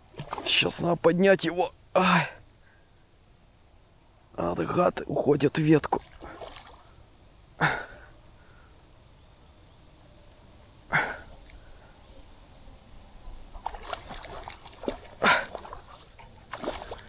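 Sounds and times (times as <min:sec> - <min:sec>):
fish splashing in water: 0:00.1 - 0:00.6, 0:06.0 - 0:07.0, 0:13.6 - 0:17.0.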